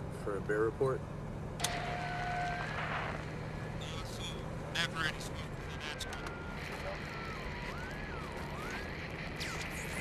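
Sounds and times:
car interior drone: 0:00.0 - 0:10.0.

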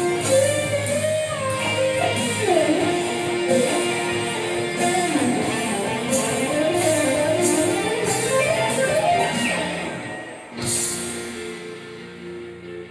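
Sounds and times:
electric guitar solo: 0:00.0 - 0:12.9.

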